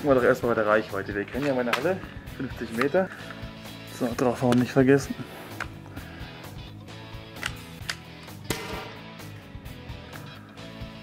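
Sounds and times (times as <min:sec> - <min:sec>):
background music with beat: 0:00.0 - 0:11.0
paintball gun shot: 0:08.4 - 0:09.1.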